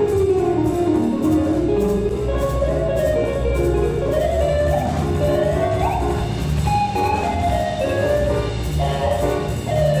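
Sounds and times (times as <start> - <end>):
double bass: 0.0 - 10.0
drum kit with light cymbals: 0.0 - 10.0.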